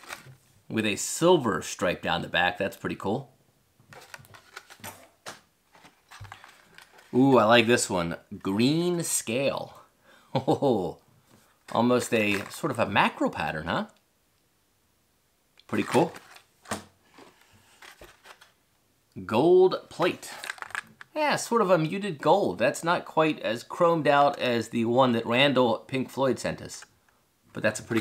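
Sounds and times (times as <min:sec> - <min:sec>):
plastic blister packs clicking and crinkling: 0:00.0 - 0:00.4, 0:03.9 - 0:07.2, 0:11.7 - 0:12.6, 0:20.1 - 0:21.2
cardboard and plastic rustling: 0:00.0 - 0:00.6, 0:03.8 - 0:07.4, 0:11.4 - 0:12.7, 0:15.7 - 0:18.6, 0:20.0 - 0:21.1, 0:27.7 - 0:28.0.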